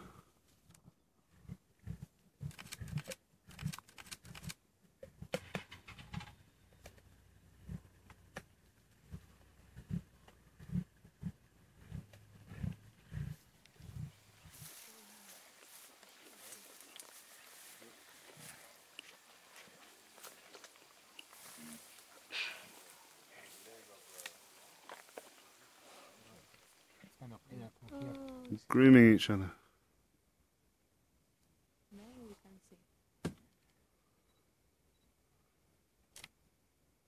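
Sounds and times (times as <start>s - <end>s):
lions chewing and crunching: 9.0s - 27.1s
rustling in dry grass: 11.9s - 27.4s.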